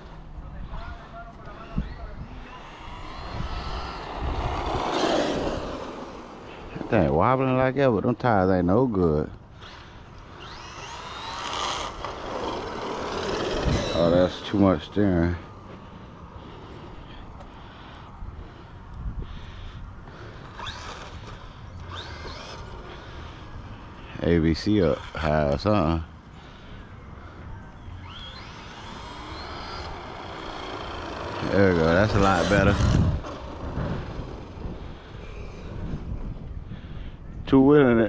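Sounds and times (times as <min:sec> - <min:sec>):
toy truck electric motor whining: 0:01.6 - 0:06.9, 0:09.6 - 0:15.4, 0:20.2 - 0:23.5, 0:27.9 - 0:36.1.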